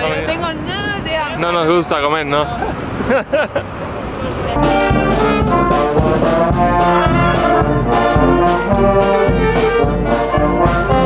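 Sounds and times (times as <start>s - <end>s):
bass drum beat: 4.6s - 11.0s
brass band playing: 4.6s - 11.0s.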